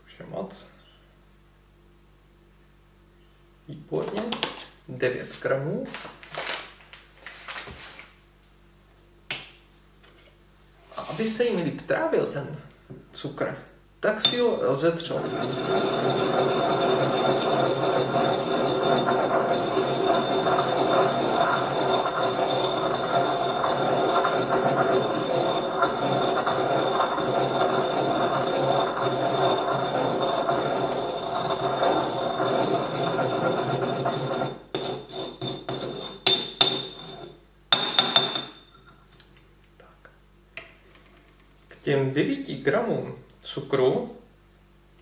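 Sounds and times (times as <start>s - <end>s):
pestle grinding sugar in mortar: 14.2s - 38.4s
pestle knocks and clinks: 15.3s - 38.8s.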